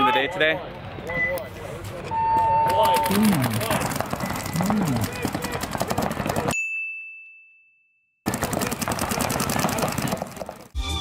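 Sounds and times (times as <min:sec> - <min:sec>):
paintball guns popping: 0:02.8 - 0:06.6, 0:08.3 - 0:10.7.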